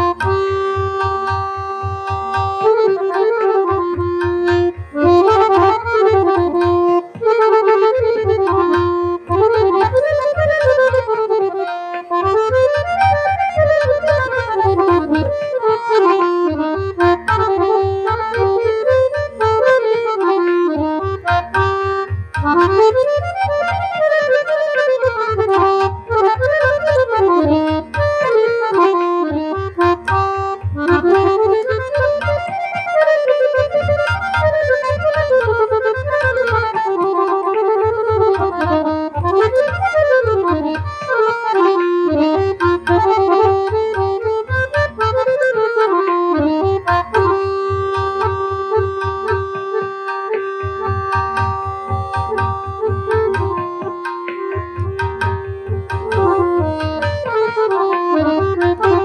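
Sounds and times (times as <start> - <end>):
harmonium melody: 0.0 - 59.0.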